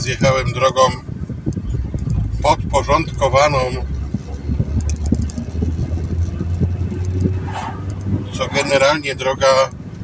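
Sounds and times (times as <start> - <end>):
car engine and tyres drone: 0.0 - 10.0.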